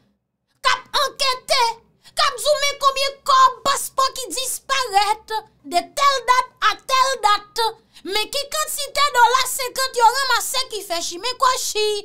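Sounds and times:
woman talking: 0.6s - 12.0s.

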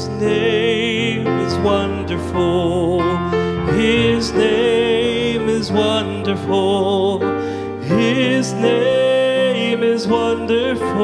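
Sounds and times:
instrumental accompaniment: 0.0s - 11.0s
man singing a slow hymn: 0.0s - 11.0s.

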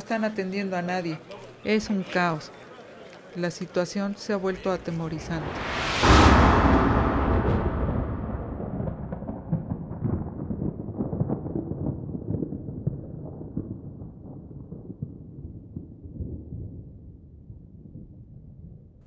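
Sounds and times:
deep boom rumble: 4.8s - 19.0s.

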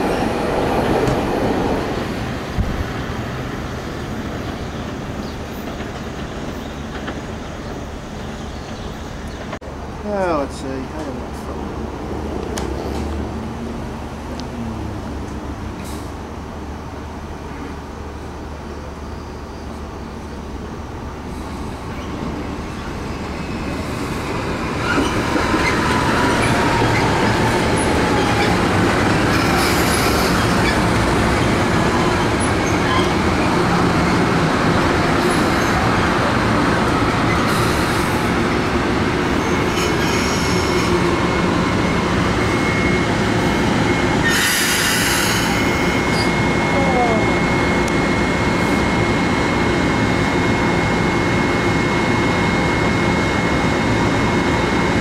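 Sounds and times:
train wheels rushing on rail: 0.0s - 14.4s, 19.7s - 55.0s
falling train whine: 0.0s - 55.0s.

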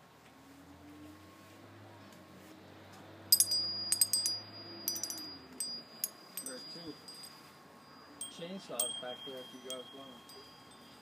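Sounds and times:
wind chime clinking: 3.3s - 11.0s.

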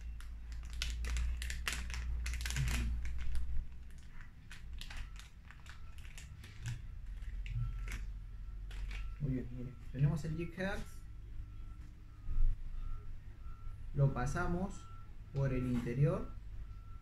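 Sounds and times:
plastic packet crinkling: 0.0s - 9.2s.

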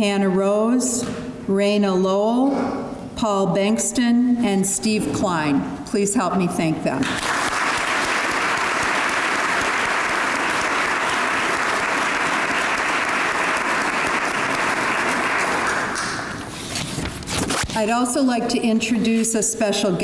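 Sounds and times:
audience applauding: 7.1s - 16.4s.

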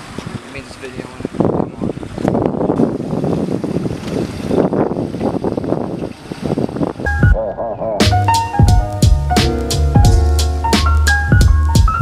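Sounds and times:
water sloshing and splashing: 0.0s - 7.1s
wind buffeting microphone: 0.0s - 7.4s.

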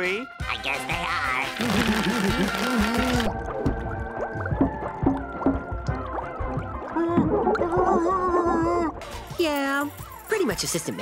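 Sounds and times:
cartoon boy gargling cry underwater: 1.5s - 3.3s, 6.9s - 9.0s.

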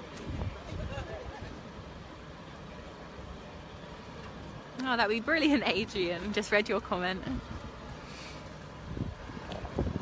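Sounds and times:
faint voices: 0.0s - 8.8s
low outdoor rumble: 0.0s - 10.0s.

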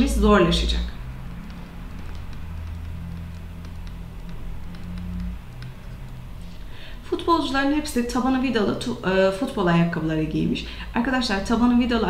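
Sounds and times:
low steady hum: 0.0s - 12.0s
pen strokes ticking: 0.9s - 6.4s.

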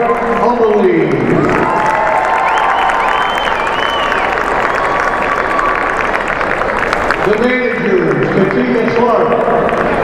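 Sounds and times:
crowd applauding and cheering: 0.0s - 10.0s
high drawn-out cheer: 0.0s - 10.0s.

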